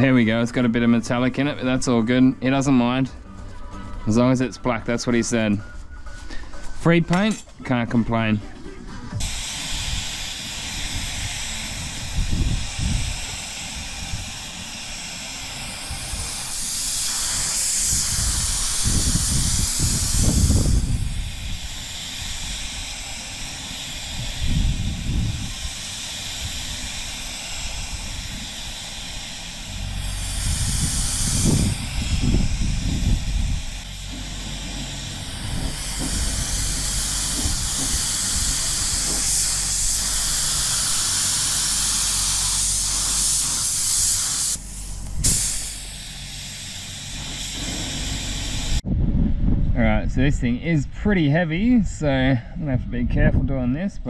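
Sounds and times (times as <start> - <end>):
wind rumble on microphone: 9.0 - 14.4, 17.8 - 22.9, 24.0 - 28.7, 29.8 - 41.0, 47.7 - 54.0
paint spray gun hissing: 9.2 - 48.8.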